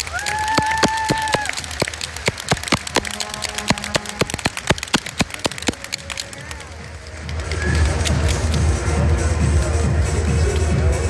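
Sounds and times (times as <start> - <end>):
crowd clapping: 0.0 - 8.8.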